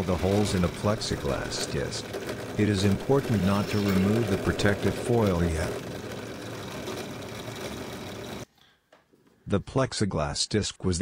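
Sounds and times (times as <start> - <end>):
drill press drilling plastic: 0.0 - 8.5.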